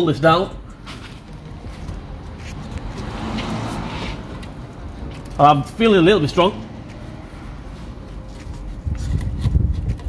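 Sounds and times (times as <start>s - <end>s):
vehicle engine rumble: 0.5s - 10.0s.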